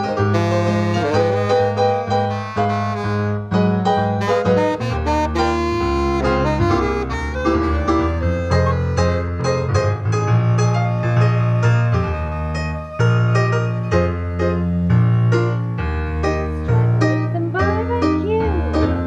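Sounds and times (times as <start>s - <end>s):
keyboard piano accompaniment: 0.0s - 19.0s
saxophone playing jazz melody: 0.0s - 19.0s.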